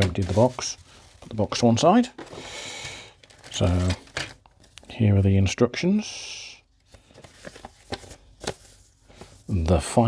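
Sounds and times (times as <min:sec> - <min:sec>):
paper rustling and crackling: 0:00.0 - 0:02.5, 0:03.1 - 0:04.8, 0:06.9 - 0:09.6.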